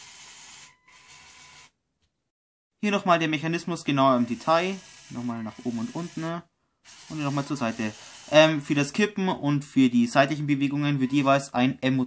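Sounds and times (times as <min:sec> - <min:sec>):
toy motor whirring: 0:00.0 - 0:01.8, 0:04.1 - 0:08.6.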